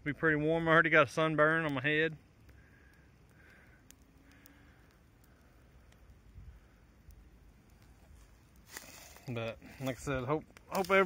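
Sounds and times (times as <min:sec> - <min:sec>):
faint outdoor ambience: 0:00.0 - 0:11.0
faint clicks: 0:02.4 - 0:06.2.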